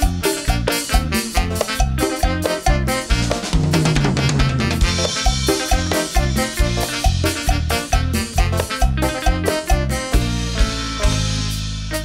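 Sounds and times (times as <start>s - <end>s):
drum kit hits: 0.0s - 12.0s
tropical dance band playing: 0.0s - 12.0s.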